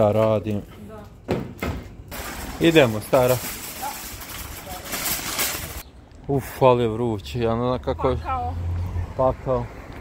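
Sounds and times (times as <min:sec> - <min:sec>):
shopping cart rattling over paving: 0:02.1 - 0:05.8.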